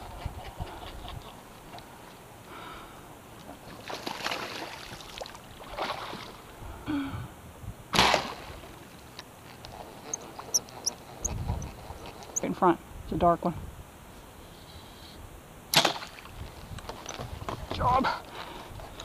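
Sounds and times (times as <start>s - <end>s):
bow shot snap: 7.9s - 8.4s.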